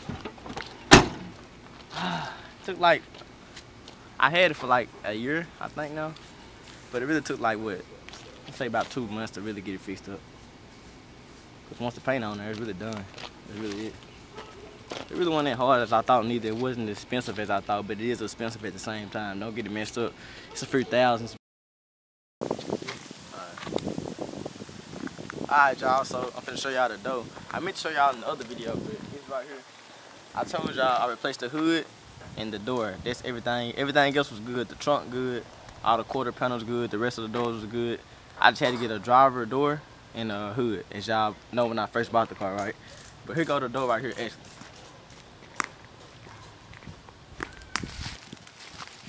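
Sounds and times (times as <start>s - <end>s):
wind on microphone: 22.4s - 27.8s, 28.4s - 29.3s, 46.8s - 49.0s
footsteps on dry leaves: 42.3s - 49.0s
rustling: 44.2s - 49.0s.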